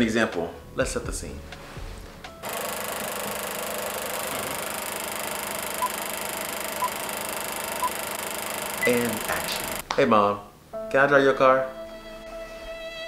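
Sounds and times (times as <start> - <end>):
film projector whirring: 2.4 - 9.8.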